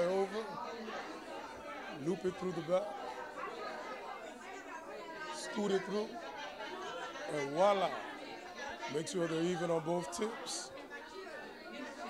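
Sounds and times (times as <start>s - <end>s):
murmur of many voices: 0.0s - 12.0s.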